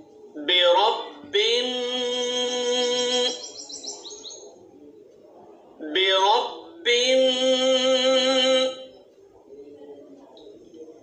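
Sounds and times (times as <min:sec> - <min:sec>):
man reciting a drawn-out vowel: 0:00.4 - 0:03.5, 0:05.8 - 0:09.0
small bird chirping: 0:03.2 - 0:04.6.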